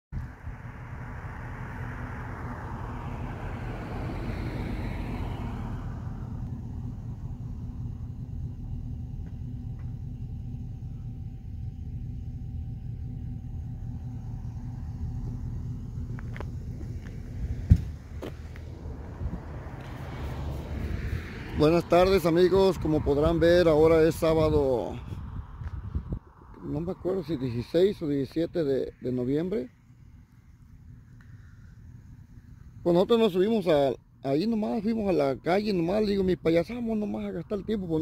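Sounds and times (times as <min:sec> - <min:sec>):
truck road and engine rumble: 0:00.1 - 0:38.0.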